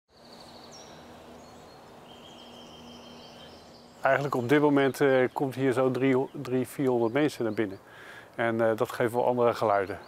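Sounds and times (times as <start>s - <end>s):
birdsong: 0.1s - 10.0s.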